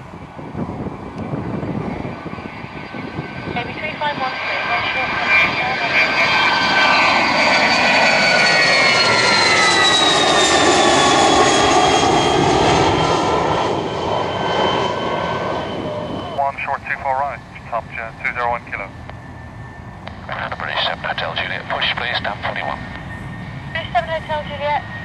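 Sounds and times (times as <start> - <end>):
jet engine whine overhead: 0.0 - 25.0
tinny radio speech: 16.4 - 18.9, 20.3 - 22.9, 23.8 - 24.8.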